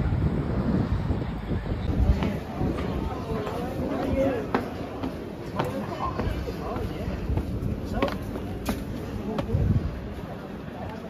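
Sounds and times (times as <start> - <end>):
people's voices: 0.8 - 11.0
footsteps on concrete stairs: 1.9 - 10.2.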